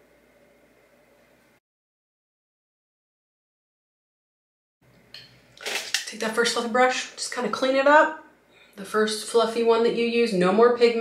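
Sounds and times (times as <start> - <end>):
person speaking: 6.0 - 8.2.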